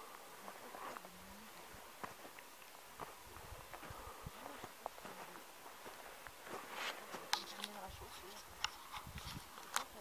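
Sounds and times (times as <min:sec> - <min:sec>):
wind buffeting microphone: 0:07.9 - 0:09.6.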